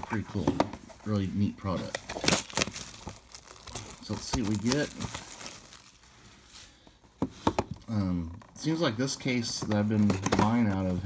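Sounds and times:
plastic wrap crinkling: 1.0 - 6.8.

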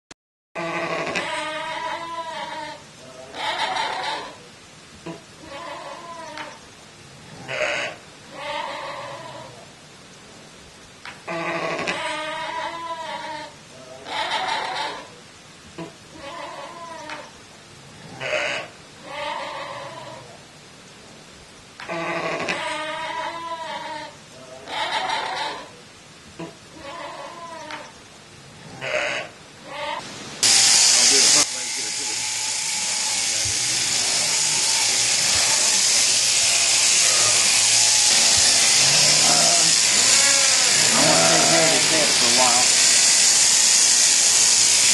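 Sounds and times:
sheep bleating: 0.6 - 4.4, 7.5 - 9.6, 11.3 - 15.1, 18.2 - 20.3, 21.9 - 25.7, 28.8 - 30.0, 33.0 - 42.9
short noisy burst: 30.0 - 44.9.

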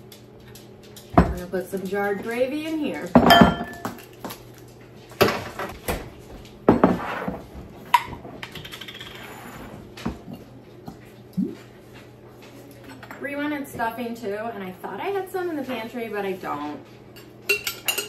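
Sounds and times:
glass jars knocking on countertop: 3.2 - 4.0.

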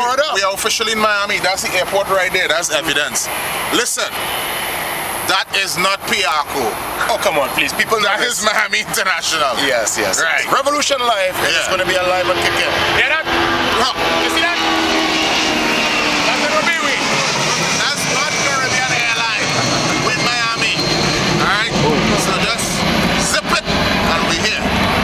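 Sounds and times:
men talking and calling out: 0.0 - 24.9
vehicle traffic hum: 0.0 - 25.0.

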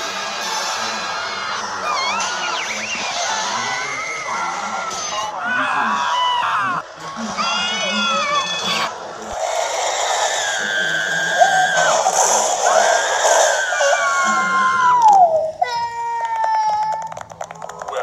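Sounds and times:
cartoon voices screaming and crying: 0.1 - 9.0, 10.2 - 17.1.

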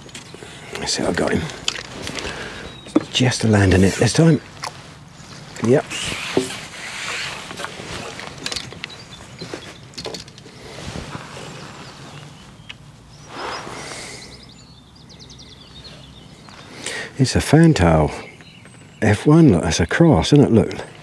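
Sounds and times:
rustling and handling noises: 0.0 - 13.8.

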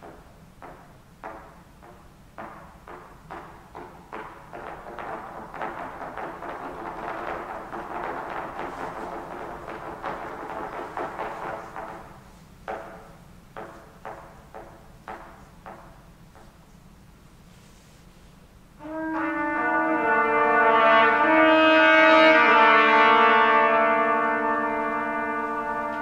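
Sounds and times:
trumpets playing: 18.8 - 26.0.

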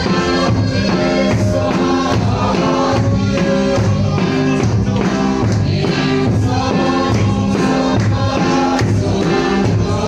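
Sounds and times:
group singing gospel music: 0.0 - 10.0
steady beat: 0.0 - 10.0.

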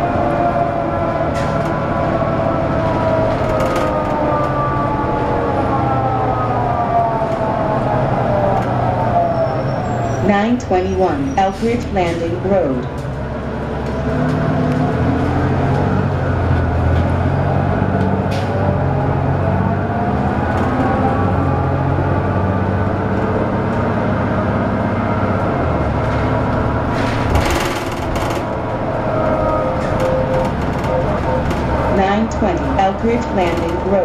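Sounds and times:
bus diesel engine running: 0.0 - 34.0.

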